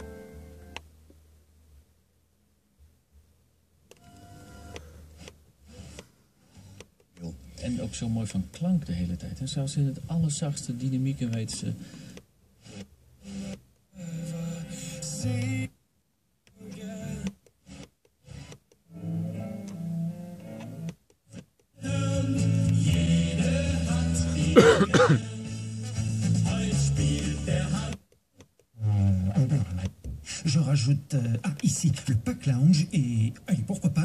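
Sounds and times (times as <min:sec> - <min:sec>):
music on radio: 0:00.0 - 0:00.8, 0:04.0 - 0:15.8, 0:16.5 - 0:34.0.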